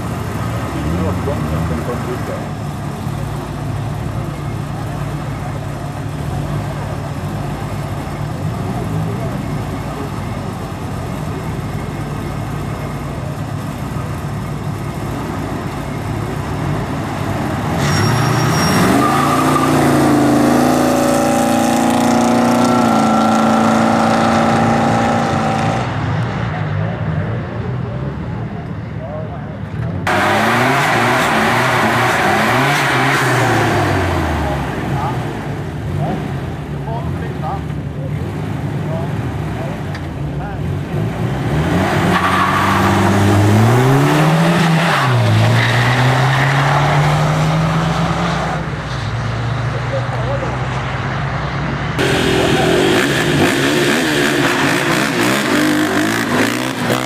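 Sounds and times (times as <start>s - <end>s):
car engines idling: 0.0s - 25.2s, 25.8s - 45.8s, 48.5s - 57.0s
car engines revving and accelerating: 0.0s - 57.0s.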